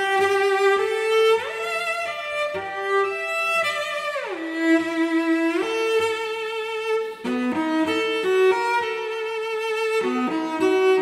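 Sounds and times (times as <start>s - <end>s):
solo cello bowed slowly: 0.0s - 11.0s.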